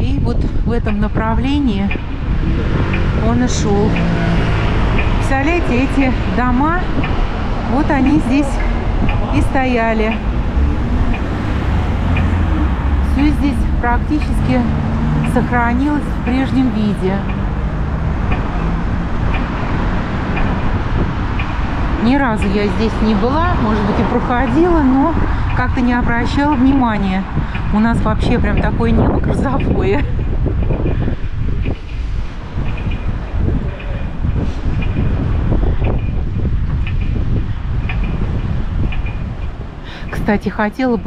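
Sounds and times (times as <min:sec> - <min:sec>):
city street traffic: 0:00.0 - 0:41.0
wind rumbling on microphone: 0:00.0 - 0:41.0.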